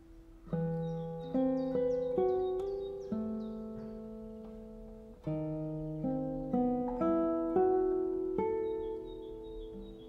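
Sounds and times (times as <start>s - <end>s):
fingerpicked classical guitar: 0.0s - 10.0s.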